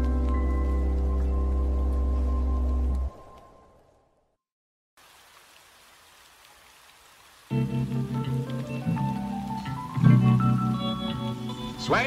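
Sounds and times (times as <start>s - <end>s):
faint steady rain: 0.0s - 4.2s, 5.0s - 12.0s.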